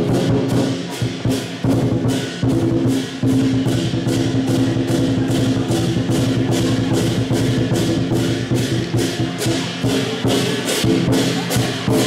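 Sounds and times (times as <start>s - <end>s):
clashing cymbals: 0.0s - 12.0s
gong: 0.0s - 12.0s
large drum: 0.0s - 12.0s.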